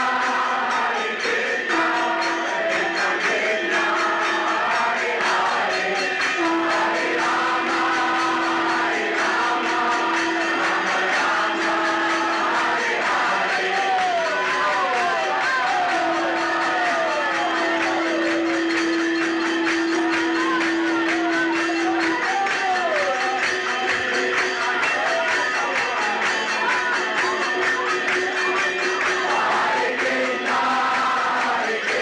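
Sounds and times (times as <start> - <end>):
group of voices singing: 0.0 - 32.0
hand cymbals beating: 0.0 - 32.0.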